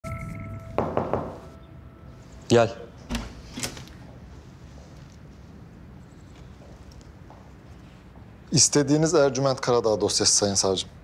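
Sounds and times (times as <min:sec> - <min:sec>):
steady held tone: 0:00.0 - 0:02.5
knocks on a door: 0:00.8 - 0:01.4.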